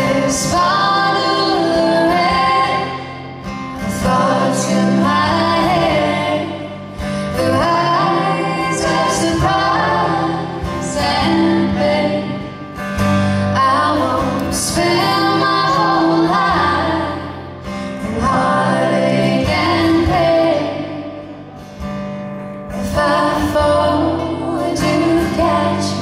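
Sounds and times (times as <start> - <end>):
women singing in harmony: 0.0 - 21.6, 22.7 - 26.0
acoustic guitars: 0.0 - 26.0.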